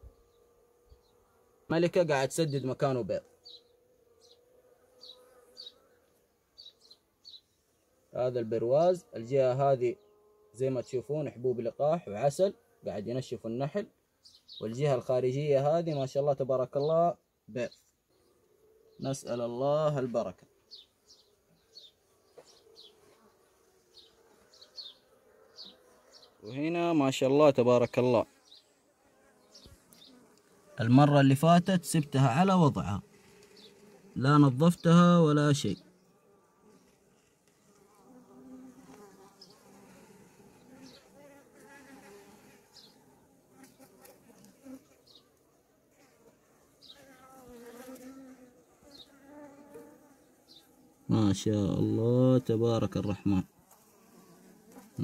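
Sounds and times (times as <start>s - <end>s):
bees buzzing: 0.0s - 8.2s, 20.7s - 55.0s
honeybees humming: 0.0s - 11.4s, 18.1s - 55.0s.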